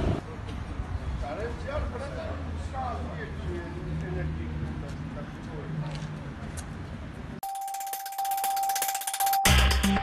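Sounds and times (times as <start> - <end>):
street noise: 0.0 - 10.0
bright bell-like ticks: 7.4 - 10.0
held electronic tone: 7.4 - 10.0.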